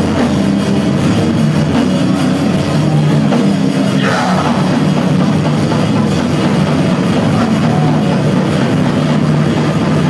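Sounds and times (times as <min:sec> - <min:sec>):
death metal band playing live: 0:00.0 - 0:10.0.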